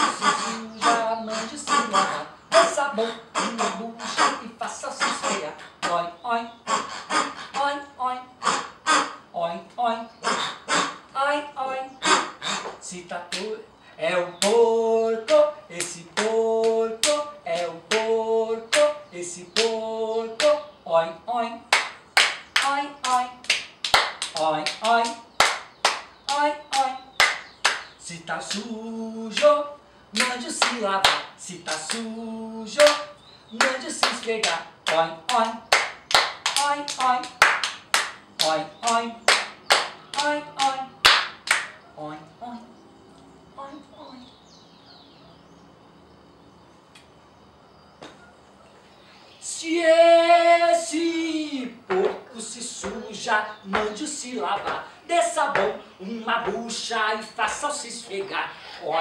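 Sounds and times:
voices chanting: 0.0 - 59.0
hand claps and body slaps: 12.6 - 13.5, 15.3 - 18.1, 21.7 - 27.9, 30.2 - 32.1, 32.8 - 41.8.

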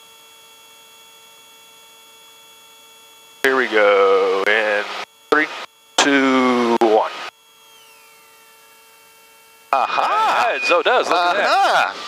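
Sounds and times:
intercom hum: 3.4 - 8.7, 9.7 - 12.0.

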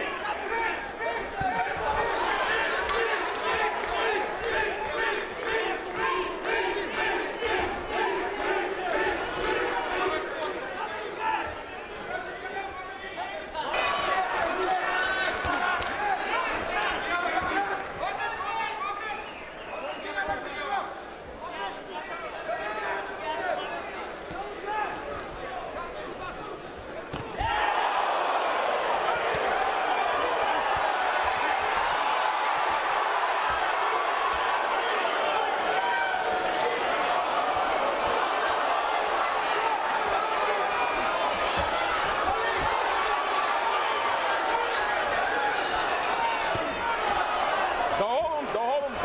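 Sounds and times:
crowd shouting: 0.0 - 20.2, 27.0 - 49.0.

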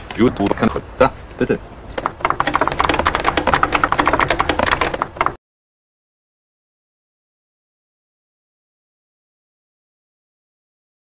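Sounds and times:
rapid typing on keyboard: 1.9 - 5.4.

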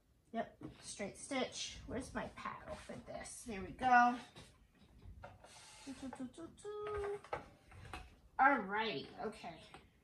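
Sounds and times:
woman humming and murmuring: 5.8 - 7.3.

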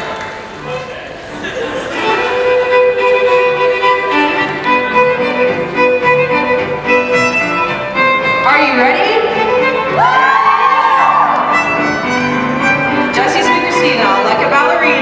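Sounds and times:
fiddle music with bass line: 1.8 - 15.0.

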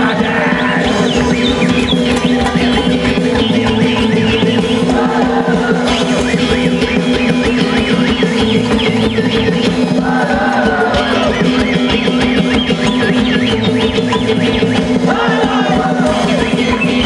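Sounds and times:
drums: 0.0 - 17.0
live band playing folk-rock: 0.0 - 17.0
choir singing: 4.8 - 6.3, 10.0 - 11.4, 15.0 - 16.8.

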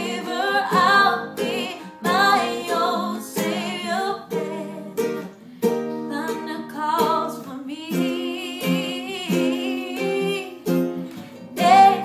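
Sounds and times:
woman singing slow melody: 0.0 - 5.3, 6.0 - 10.8, 11.6 - 12.0
strummed acoustic guitar: 0.0 - 12.0
ukulele: 0.0 - 12.0.

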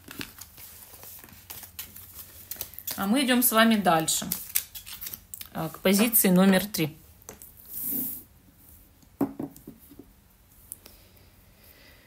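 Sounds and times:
objects sliding on wooden table: 7.7 - 8.3.

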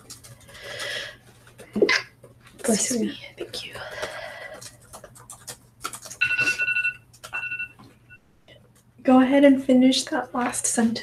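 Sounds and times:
laptop typing clicks: 0.0 - 1.0, 4.0 - 6.5, 7.1 - 7.5
phone timer alarm beeping: 6.2 - 8.2.

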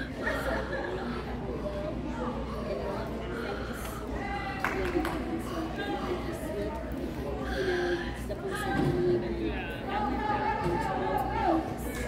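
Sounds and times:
indistinct chatter of voices: 0.0 - 12.0
steady low hum: 0.0 - 12.0.

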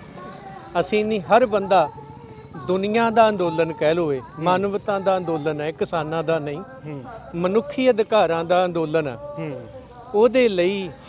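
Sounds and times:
man talking: 2.6 - 11.0.

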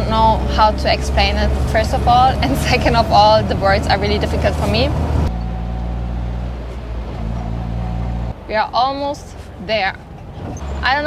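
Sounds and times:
car engine hum from inside: 0.0 - 11.0.

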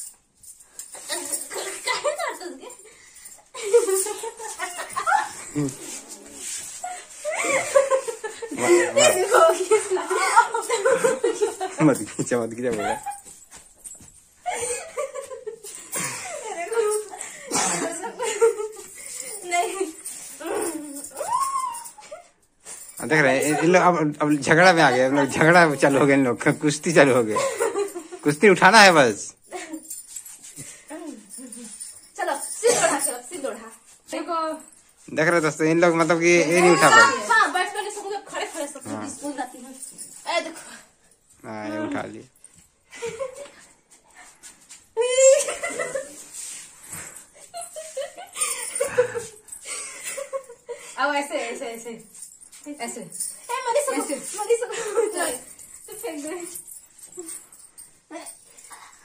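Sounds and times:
women laughing and giggling: 0.8 - 26.1, 26.8 - 28.4, 29.4 - 33.6, 36.5 - 40.9, 42.9 - 59.0.

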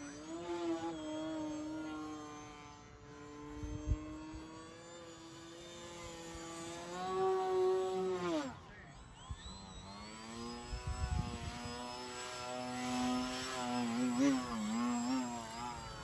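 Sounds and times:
electric motor and propeller whine: 0.0 - 16.0.

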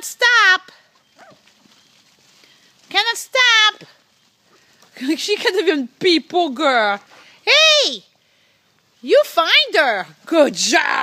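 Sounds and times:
dog steps on leaves: 0.9 - 5.1
dog yelping: 1.0 - 1.5
woman's high-pitched voice: 5.0 - 8.1.

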